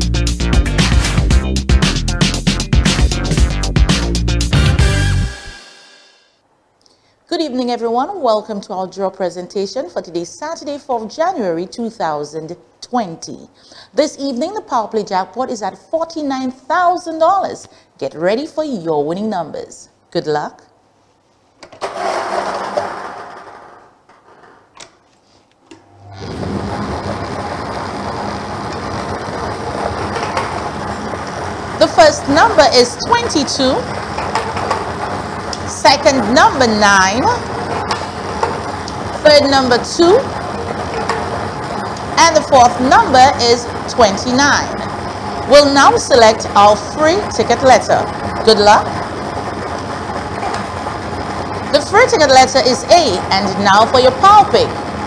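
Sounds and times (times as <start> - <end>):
lottery balls tumbling and clattering: 21.7 - 24.7, 28.7 - 31.8, 32.5 - 41.9
mixer humming: 21.8 - 24.1, 25.7 - 55.0
lottery balls clattering: 21.8 - 24.5.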